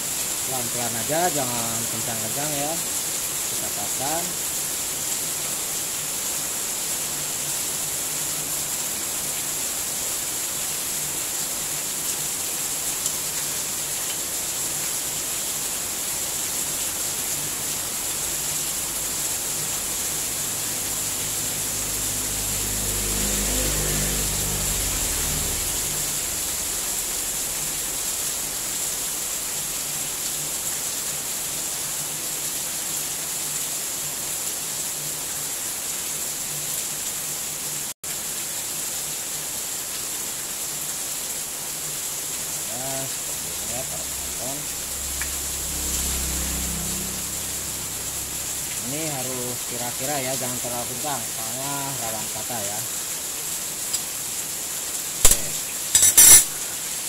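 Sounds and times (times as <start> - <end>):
steady hiss: 0.0 - 22.3, 38.1 - 45.7
engine passing by: 18.7 - 29.5, 43.3 - 48.9
high-pitched ring: 56.0 - 56.6.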